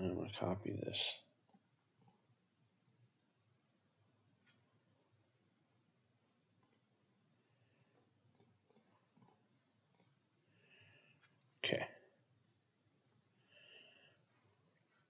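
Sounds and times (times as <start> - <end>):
computer mouse clicks: 1.5 - 2.2, 6.6 - 6.9, 8.3 - 10.2.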